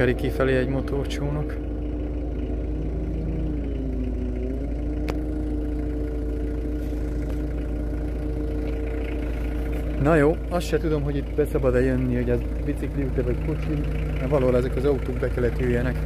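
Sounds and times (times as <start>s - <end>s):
engine idling: 0.0s - 16.0s.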